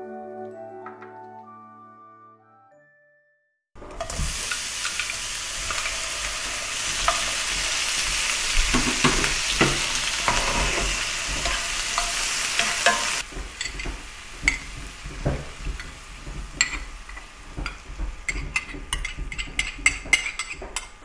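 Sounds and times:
shrimp sizzling in hot oil: 3.8 - 21.0.

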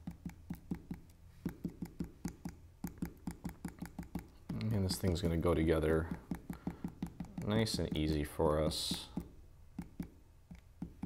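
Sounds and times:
glue bottle tip tapping: 0.0 - 11.0.

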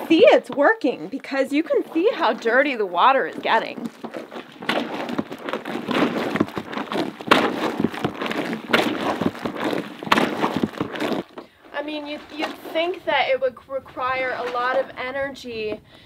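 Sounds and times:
water sloshing and churning: 0.0 - 11.4.

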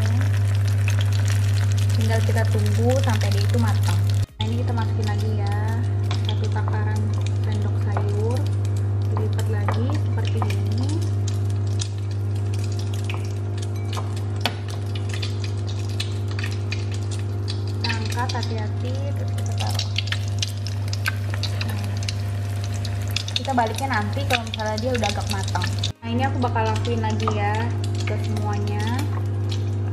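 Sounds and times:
hot oil sizzling in a frying pan: 0.0 - 29.9
low hum: 0.0 - 29.9.

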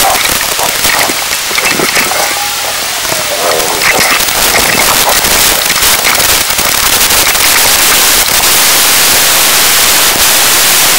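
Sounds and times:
radio static hiss and crackle: 0.0 - 10.9.

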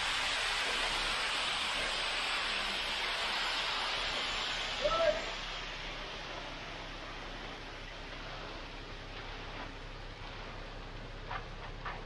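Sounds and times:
wet concrete sliding down chute: 0.0 - 12.0.

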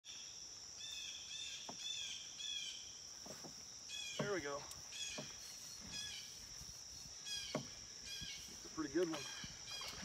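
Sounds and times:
insects droning: 0.0 - 10.0
bird calling: 0.8 - 10.0.

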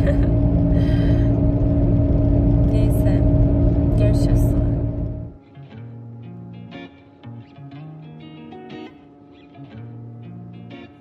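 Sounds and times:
people laughing: 0.0 - 0.4
car engine drone and road noise: 0.0 - 5.4.

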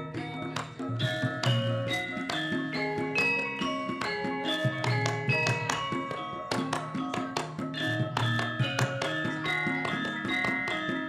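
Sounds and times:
gamelan playing: 0.0 - 11.0.

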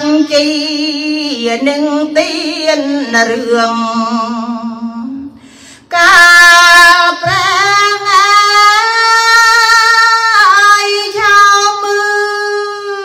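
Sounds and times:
woman chanting unaccompanied: 0.0 - 5.3, 5.9 - 13.0.

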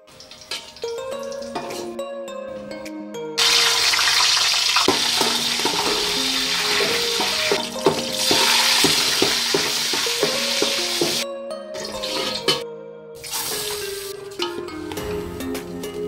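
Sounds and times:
nuts sizzling in hot oil: 0.1 - 1.5, 3.4 - 11.2
metal spoon scraping pot: 0.2 - 2.0, 4.8 - 11.2, 11.8 - 12.6.

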